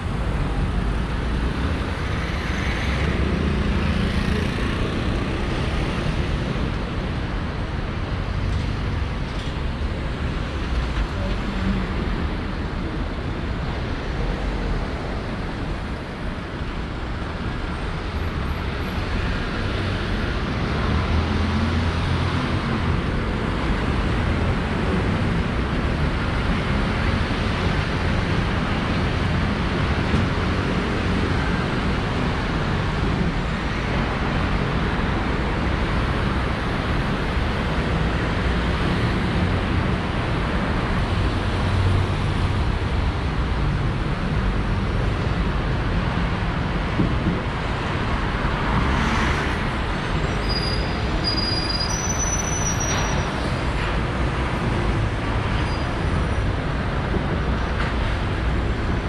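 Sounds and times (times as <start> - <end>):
cars and motorbikes passing: 0.0 - 10.5.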